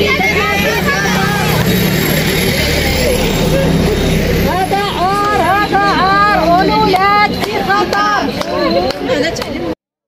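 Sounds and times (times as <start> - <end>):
low rumble: 0.0 - 8.0
women talking over one another: 0.0 - 9.8.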